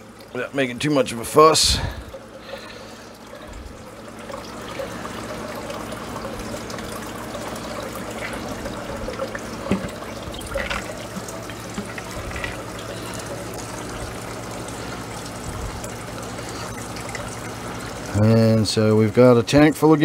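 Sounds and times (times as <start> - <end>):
water trickling into tank: 0.0 - 20.0
small water splashes: 1.0 - 18.2.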